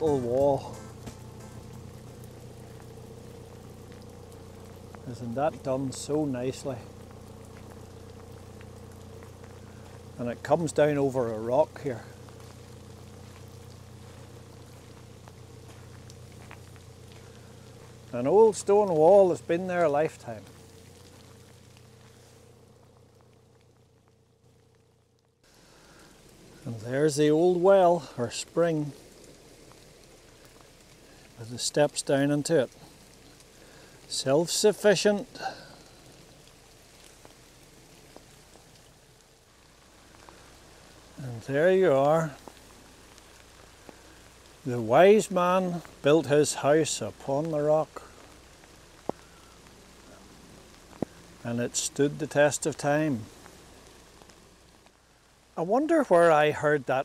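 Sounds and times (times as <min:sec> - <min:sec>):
faint outdoor hiss: 0:00.0 - 0:57.0
steady low hum: 0:00.0 - 0:57.0
faint ticks: 0:28.8 - 0:34.2, 0:35.2 - 0:41.3, 0:42.1 - 0:44.7, 0:47.0 - 0:55.4.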